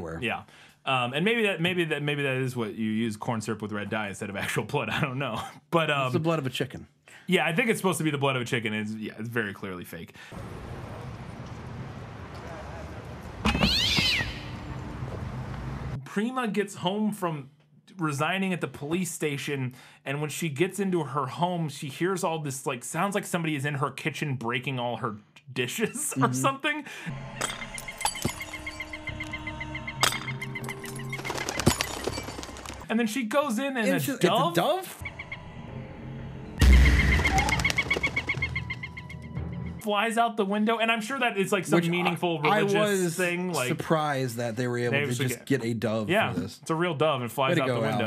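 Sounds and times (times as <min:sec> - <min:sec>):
film music: 0:27.0 - 0:32.8, 0:35.0 - 0:39.9
loud low hit: 0:36.6 - 0:37.5
dove cooing: 0:37.0 - 0:39.1.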